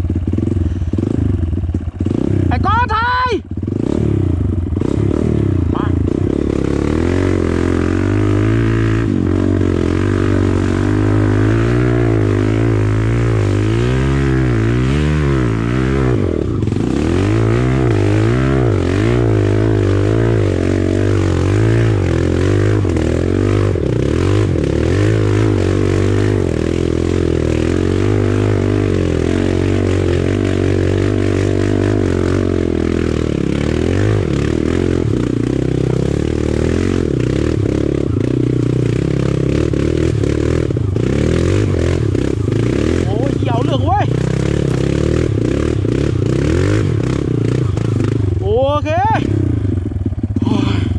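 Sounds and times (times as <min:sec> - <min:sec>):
dirt bike engine revving: 0:00.0 - 0:50.9.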